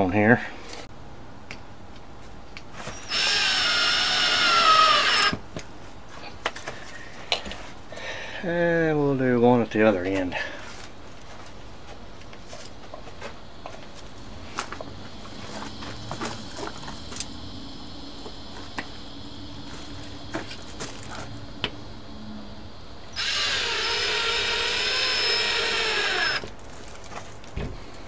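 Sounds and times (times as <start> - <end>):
cordless drill driving screw into wood: 2.9 - 5.4, 23.2 - 26.5.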